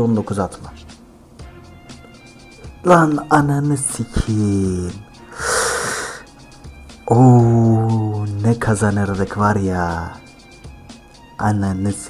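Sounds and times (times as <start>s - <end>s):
faint background music: 0.0s - 12.0s
man exhaling in frustration: 5.3s - 6.3s.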